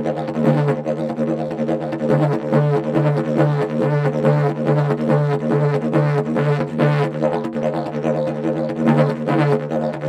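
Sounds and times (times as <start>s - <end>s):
didgeridoo drone: 0.0s - 10.0s.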